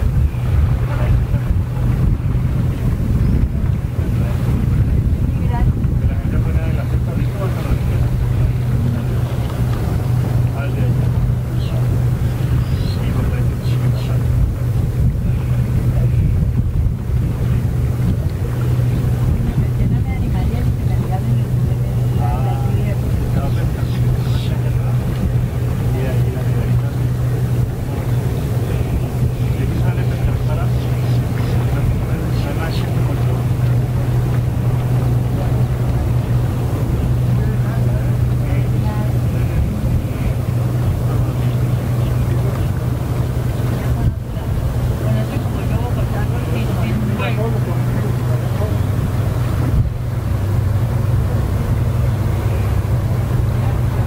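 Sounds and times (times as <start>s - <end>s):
boat engines droning: 0.0s - 54.0s
wind on microphone: 0.0s - 54.0s
faint distant voices: 0.3s - 54.0s.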